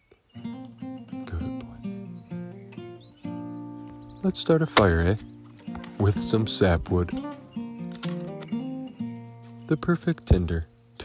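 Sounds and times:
acoustic guitar music: 0.3 - 11.0.

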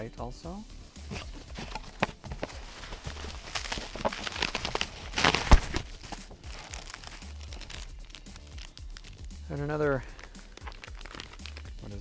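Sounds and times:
cardboard box flaps handled: 1.1 - 6.3
metallic bags crinkling: 1.5 - 12.0.

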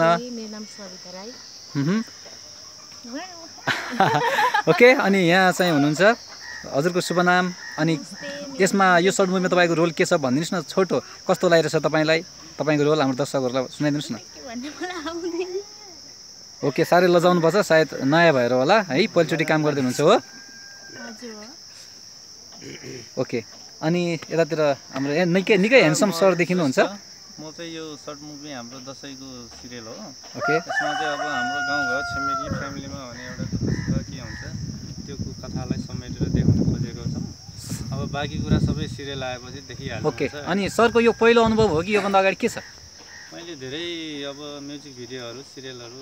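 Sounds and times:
insects trilling: 0.0 - 46.0
person making brief vocal sounds: 1.8 - 2.1.

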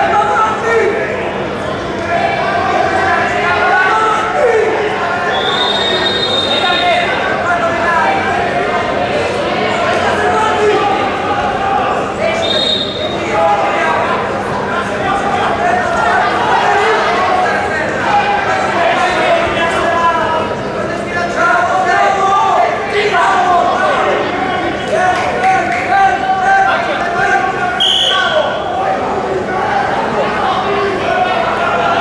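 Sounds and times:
voices calling out: 0.0 - 32.0
referee's whistle blast: 5.3 - 7.0, 12.4 - 13.2, 27.8 - 28.6.

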